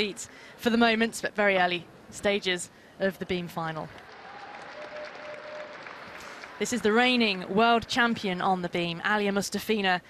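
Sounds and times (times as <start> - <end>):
crowd applauding: 4.0 - 7.7.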